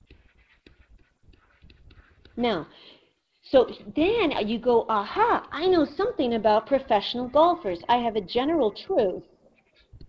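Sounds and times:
stylus tapping and scratching screen: 0:00.0 - 0:02.7, 0:09.4 - 0:10.0.

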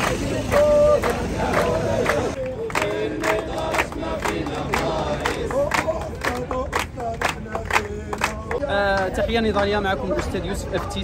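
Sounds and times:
crowd chanting: 0:00.0 - 0:08.8
rhythmic hand-clapping: 0:00.0 - 0:11.0.

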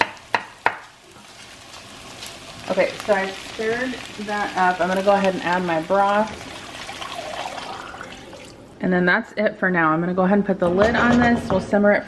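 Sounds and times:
knife chopping on wooden board: 0:00.0 - 0:00.8
faint vegetables sizzling: 0:00.0 - 0:08.7.

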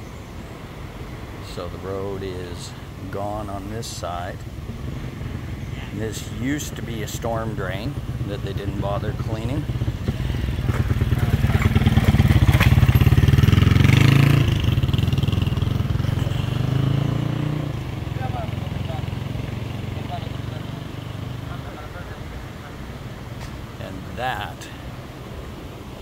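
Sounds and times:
motorcycle engine running: 0:06.3 - 0:21.9.

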